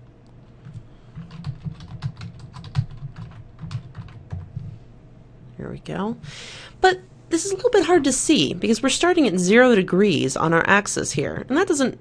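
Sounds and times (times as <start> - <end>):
typing on computer keyboard: 0.7 - 4.5.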